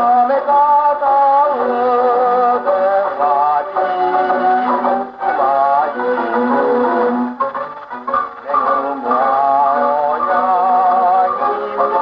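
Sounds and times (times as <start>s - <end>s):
man singing baritone: 0.0s - 7.3s, 8.4s - 12.0s
orchestral accompaniment: 3.8s - 10.6s.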